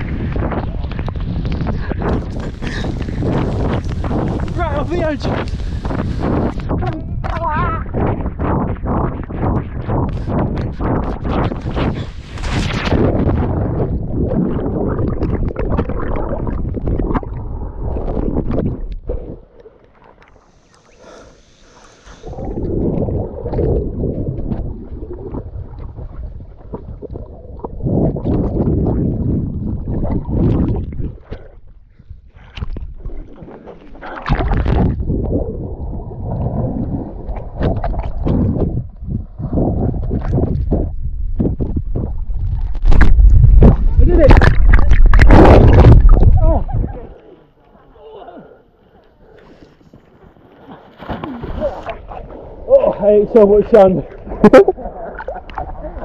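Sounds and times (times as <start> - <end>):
underwater rumbling and gurgling: 0.0 - 48.0, 48.8 - 56.0.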